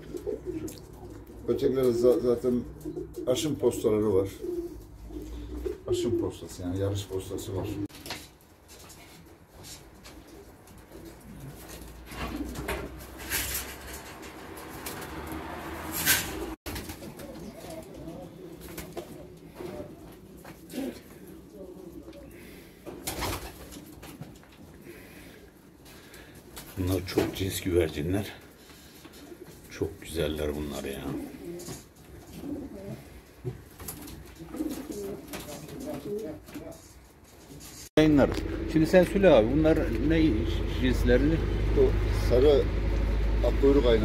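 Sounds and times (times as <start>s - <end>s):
pigeons cooing: 0.0s - 7.9s, 10.0s - 26.6s, 28.5s - 29.7s, 30.6s - 36.8s.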